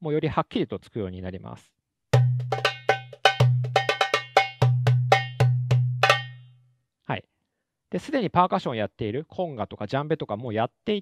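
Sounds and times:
goblet drum played by hand: 2.2s - 6.5s.

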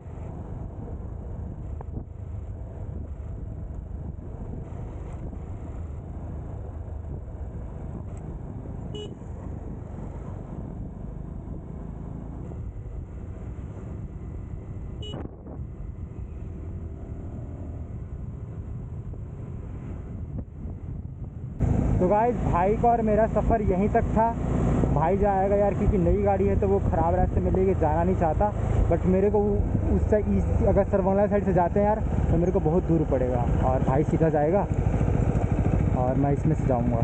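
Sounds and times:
motorcycle engine and wind rumble: 0.0s - 37.0s
motorcycle horn toots: 8.9s - 9.3s, 15.0s - 15.3s.

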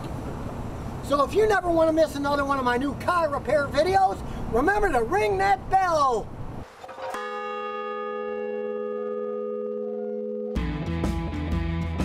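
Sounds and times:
large bell ringing: 7.0s - 10.7s.

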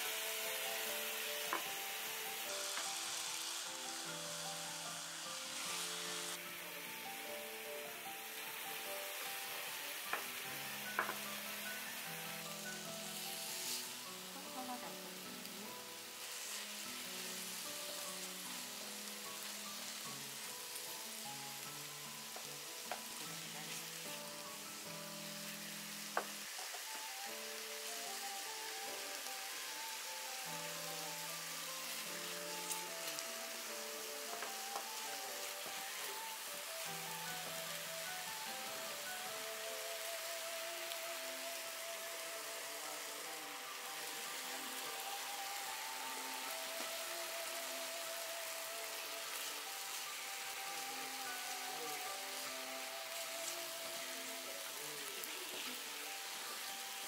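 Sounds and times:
food sizzling in a pan: 0.0s - 57.0s.

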